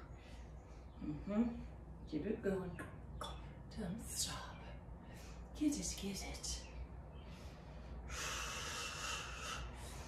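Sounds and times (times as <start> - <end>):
woman breathing hard: 7.1 - 10.0.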